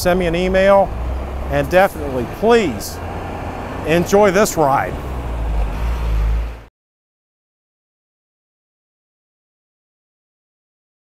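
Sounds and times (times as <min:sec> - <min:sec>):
vehicle engine idling: 0:00.0 - 0:06.6.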